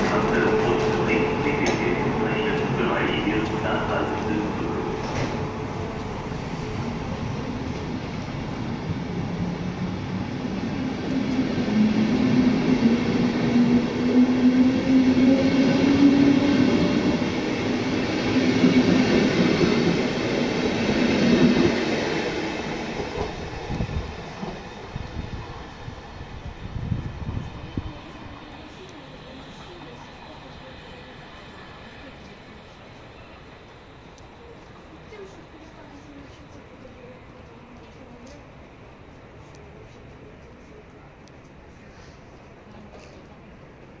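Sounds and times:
train hum: 0.0s - 44.0s
train wheels on rails: 0.0s - 44.0s
wind noise on microphone: 23.4s - 28.0s.

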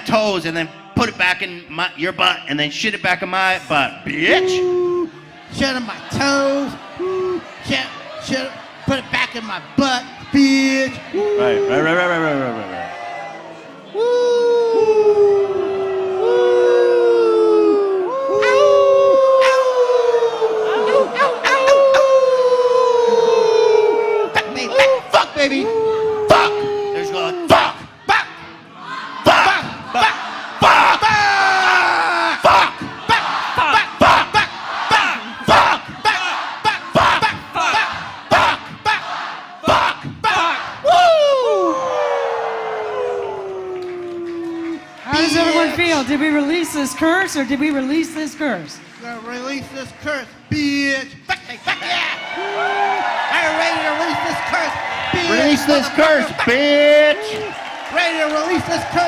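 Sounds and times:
men howling through microphones: 14.0s - 27.8s.

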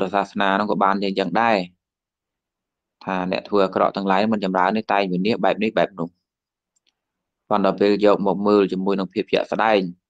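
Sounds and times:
man preaching: 0.0s - 1.8s, 3.0s - 6.2s, 7.5s - 10.0s.

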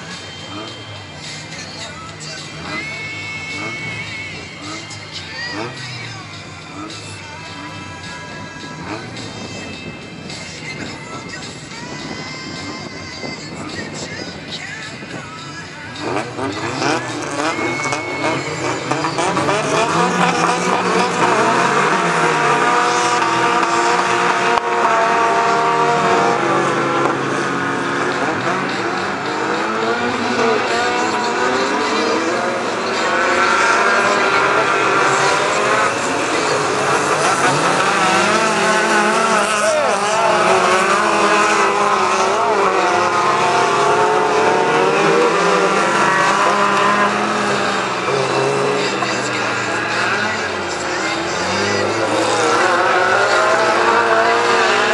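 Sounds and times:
racing car engines revving: 0.0s - 54.9s.

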